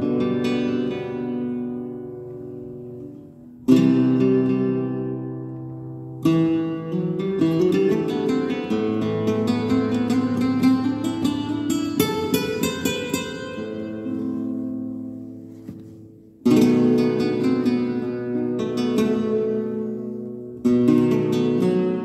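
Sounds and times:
flamenco guitar playing: 0:00.0 - 0:22.0.

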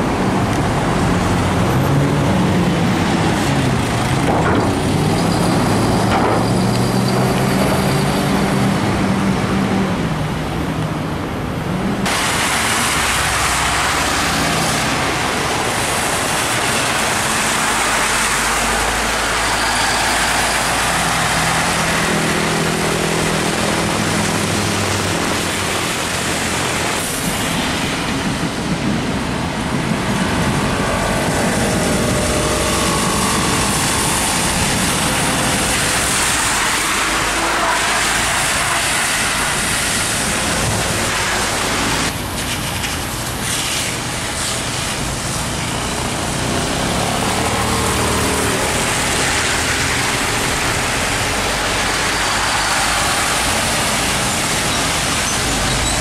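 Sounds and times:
bus engine accelerating: 0:00.0 - 0:56.0
tyres hissing on wet road: 0:00.0 - 0:56.0.

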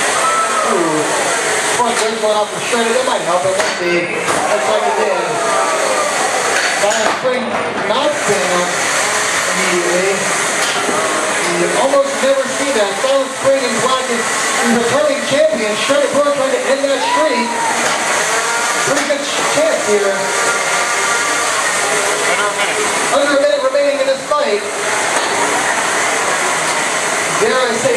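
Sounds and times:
faint voices: 0:00.1 - 0:27.9.

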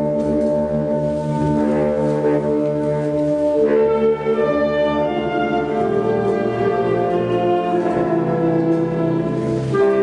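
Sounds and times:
wind band playing slow chords: 0:00.0 - 0:10.0.

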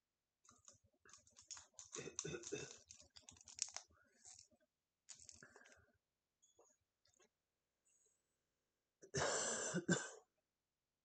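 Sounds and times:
man coughing: 0:09.1 - 0:10.2.

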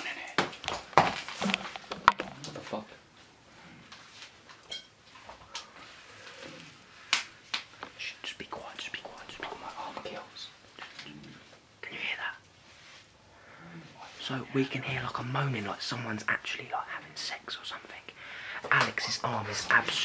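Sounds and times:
man whispering: 0:00.0 - 0:00.4, 0:07.9 - 0:12.4, 0:13.6 - 0:20.0.

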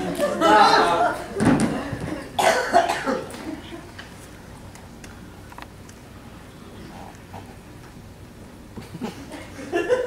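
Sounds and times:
person coughing: 0:02.4 - 0:03.3.

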